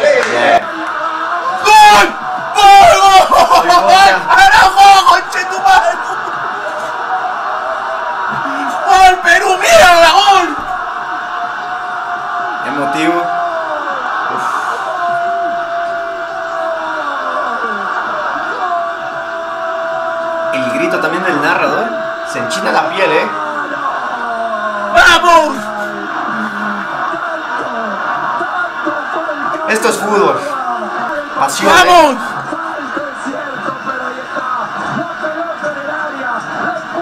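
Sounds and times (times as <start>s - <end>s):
man yelling: 1.3s - 6.2s, 8.4s - 10.6s, 24.9s - 25.8s, 31.3s - 32.2s
commentator shouting goal cry: 29.5s - 33.2s.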